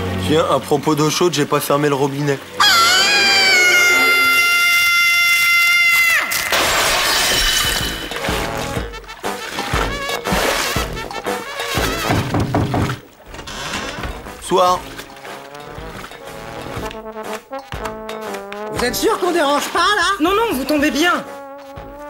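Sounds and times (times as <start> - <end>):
crash and rushing water: 0.0 - 17.5
background music: 0.0 - 22.0
cartoon character crying out: 2.6 - 6.5.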